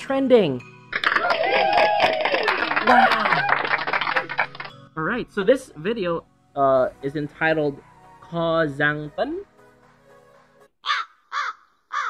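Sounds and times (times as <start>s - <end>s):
faint background music: 0.0s - 10.5s
crow cawing: 10.8s - 12.0s.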